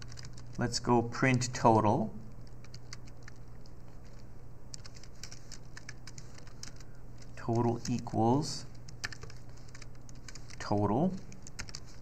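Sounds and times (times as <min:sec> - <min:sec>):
keyboard typing: 0:00.0 - 0:00.6, 0:02.3 - 0:12.0
faint low hum: 0:00.0 - 0:12.0.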